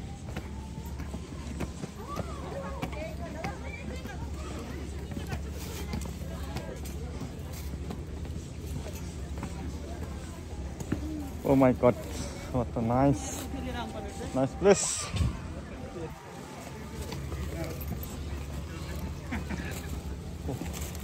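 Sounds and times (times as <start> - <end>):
faint people talking: 0.0 - 21.0.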